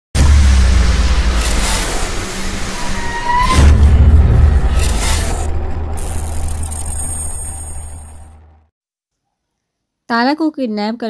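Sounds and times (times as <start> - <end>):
deep steady rumble: 0.2 - 8.7.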